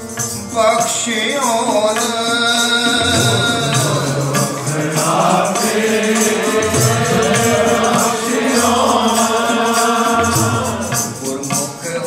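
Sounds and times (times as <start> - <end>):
tabla strokes: 0.0 - 11.9
harmoniums playing: 0.0 - 12.0
men chanting a hymn: 2.9 - 12.0.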